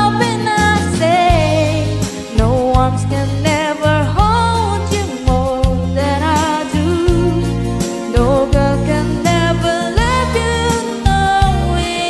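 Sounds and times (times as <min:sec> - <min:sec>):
instrumental backing track: 0:00.0 - 0:12.0
woman singing pop ballad: 0:00.0 - 0:12.0.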